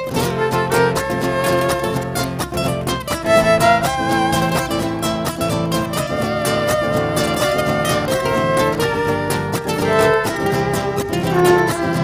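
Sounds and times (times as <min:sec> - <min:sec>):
plucked nylon-string guitar: 0:00.0 - 0:12.0
violins playing melody: 0:00.1 - 0:02.4, 0:03.1 - 0:12.0.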